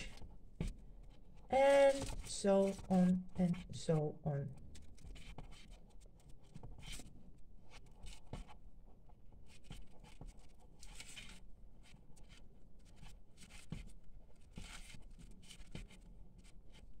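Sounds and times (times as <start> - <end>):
paper yarn rustling and scratching: 0.0 - 17.0.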